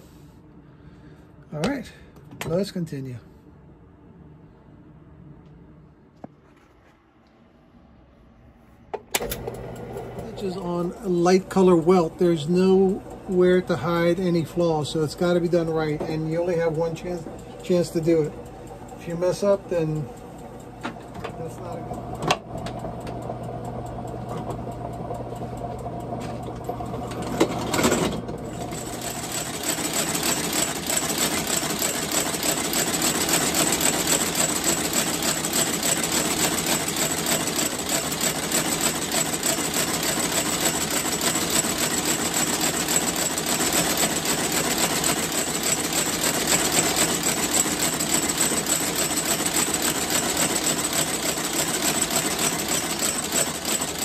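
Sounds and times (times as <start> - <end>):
machine humming: 7.7 - 54.0
stitching machine clattering: 9.2 - 54.0.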